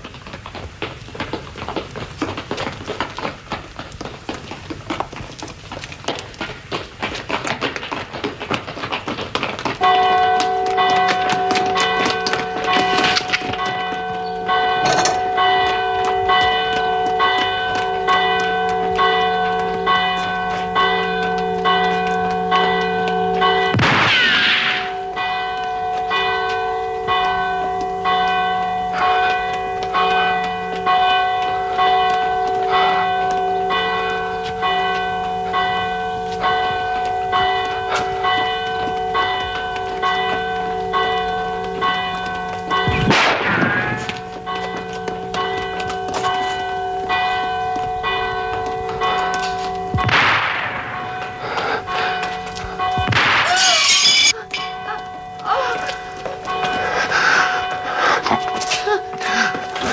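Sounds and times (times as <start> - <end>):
church bell ringing: 9.7 - 59.9
loud gunshots: 23.7 - 24.8, 42.9 - 44.0, 50.0 - 51.0, 53.0 - 53.6.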